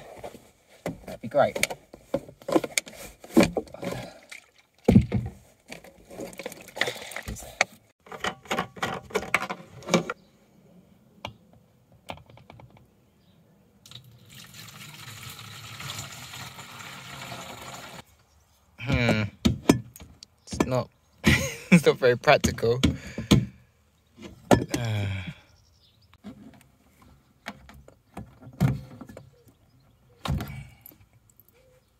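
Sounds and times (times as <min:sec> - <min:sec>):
plastic containers rummaged and knocked: 0:00.0 - 0:10.2, 0:24.2 - 0:24.9, 0:26.2 - 0:31.1
water running into a mug: 0:13.9 - 0:18.0.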